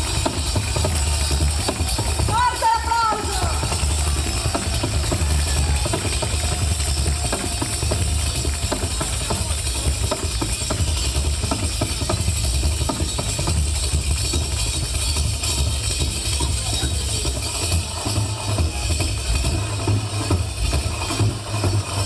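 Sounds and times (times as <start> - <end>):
frame drum strokes and jingles: 0.0 - 22.0
live band through pa: 0.0 - 22.0.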